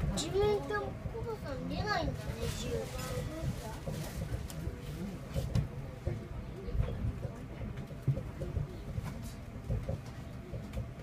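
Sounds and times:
monorail car rumble: 0:00.0 - 0:11.0
knocks inside monorail car: 0:08.0 - 0:10.9.

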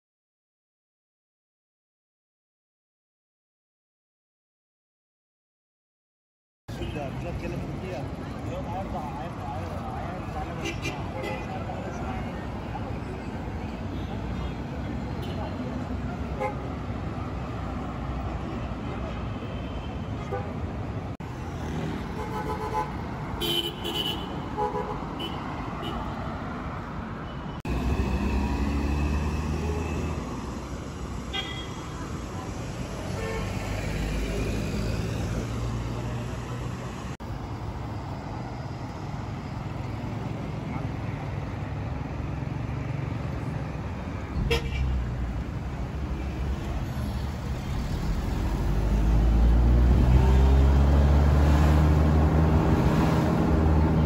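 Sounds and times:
people's voices: 0:06.7 - 0:16.5
cars passing: 0:06.7 - 0:54.0.

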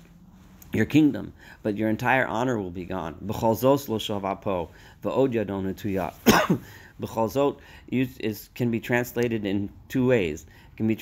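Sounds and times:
man speaking: 0:00.7 - 0:06.4
loud cough: 0:06.2 - 0:06.8.

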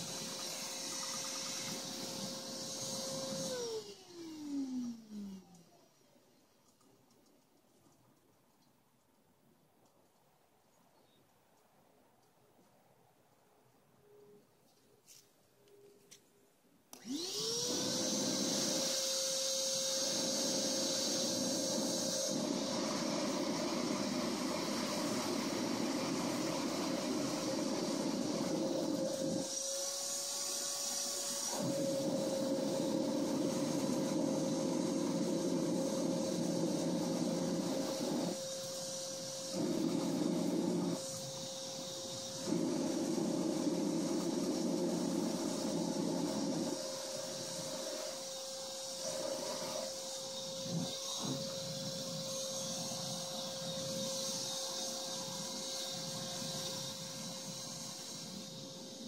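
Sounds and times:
vacuum motor whine: 0:00.0 - 0:05.8, 0:17.0 - 0:59.0
air rushing through hose: 0:17.1 - 0:59.0.

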